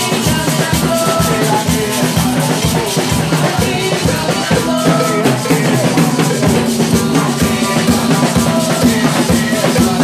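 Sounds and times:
drum kit beat: 0.0s - 10.0s.

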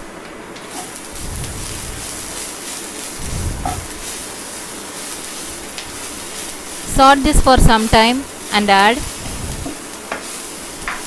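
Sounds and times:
onions sizzling in hot oil: 0.0s - 11.0s.

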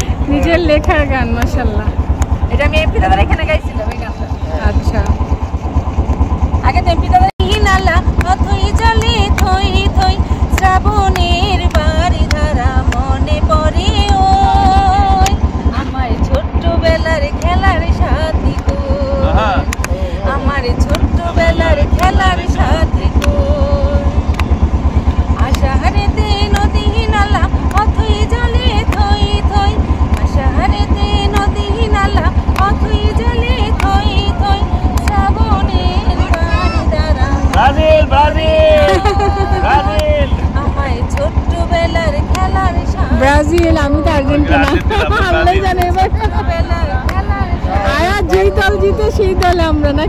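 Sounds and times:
hand claps: 0.0s - 1.6s, 7.4s - 13.2s, 13.8s - 15.4s, 17.3s - 17.8s, 18.4s - 20.0s, 20.8s - 23.6s, 24.2s - 24.7s, 25.4s - 50.0s
woman singing: 0.0s - 3.4s, 6.7s - 24.4s, 25.3s - 37.7s, 38.7s - 50.0s
boat engine thumping: 0.0s - 50.0s.

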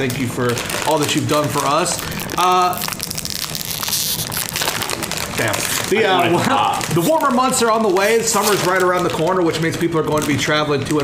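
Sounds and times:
wrapper crinkling: 0.0s - 11.0s.

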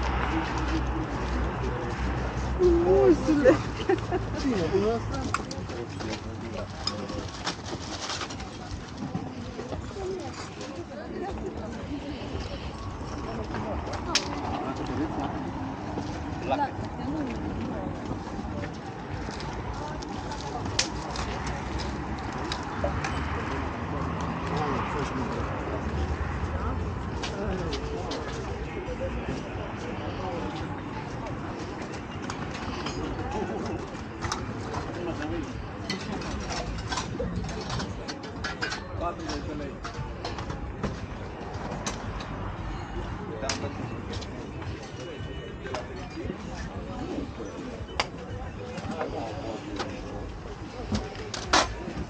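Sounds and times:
indistinct voices: 0.0s - 52.0s.

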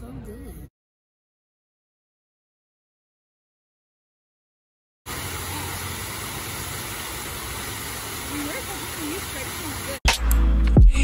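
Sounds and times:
fountain water splashing: 5.1s - 10.0s
low traffic rumble: 5.1s - 10.0s.

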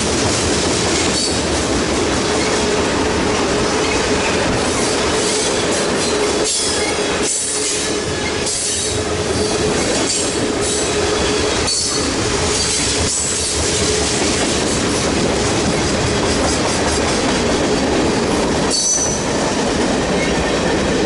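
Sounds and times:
train wheels rumbling and clattering: 0.0s - 21.0s
high wheel squeals: 18.7s - 19.3s.

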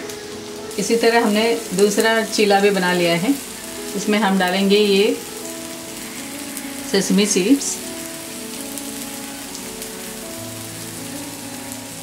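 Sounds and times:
food sizzling in oil: 0.0s - 12.0s.

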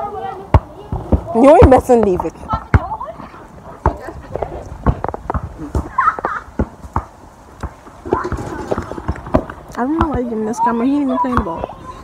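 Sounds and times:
faint voices: 0.0s - 6.3s, 7.8s - 12.0s
irregular thumps and knocks: 3.8s - 10.3s.

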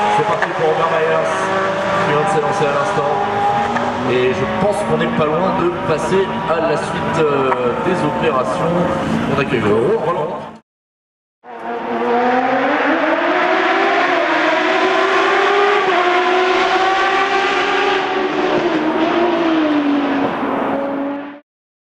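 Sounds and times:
engine revving: 0.0s - 9.5s, 11.4s - 21.4s.

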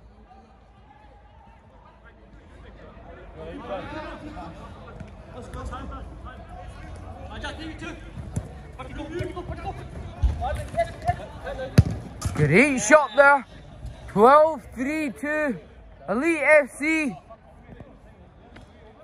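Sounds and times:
players shouting: 8.9s - 13.5s, 14.1s - 17.3s
football being kicked: 9.2s - 12.4s.

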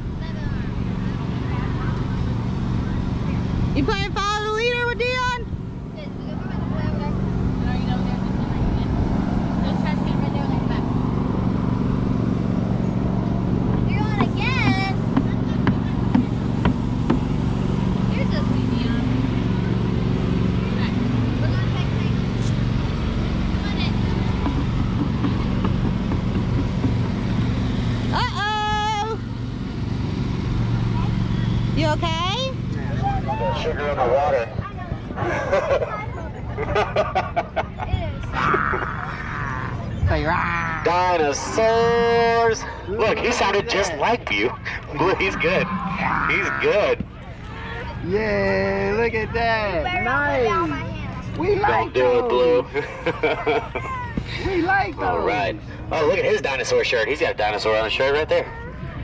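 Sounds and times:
children's voices: 0.0s - 3.5s, 13.8s - 16.6s, 20.8s - 24.6s, 34.2s - 41.1s, 49.9s - 52.1s
low motor hum: 0.0s - 59.0s
people talking: 9.6s - 10.9s, 13.8s - 16.5s, 18.0s - 19.1s, 20.7s - 22.2s, 28.1s - 29.2s, 31.8s - 59.0s.

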